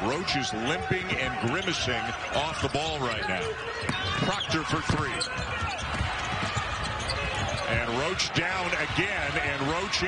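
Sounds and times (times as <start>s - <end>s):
basketball bouncing on hardwood: 3.8s - 7.9s.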